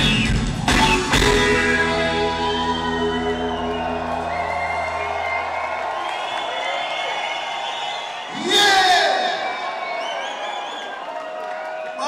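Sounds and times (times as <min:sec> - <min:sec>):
live band closing chord: 0:00.0 - 0:06.2
crowd cheering and whooping: 0:00.0 - 0:12.0.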